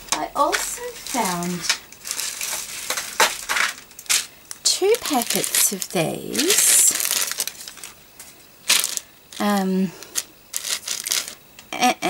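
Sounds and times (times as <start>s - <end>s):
plastic packets crinkling: 0.0s - 11.7s.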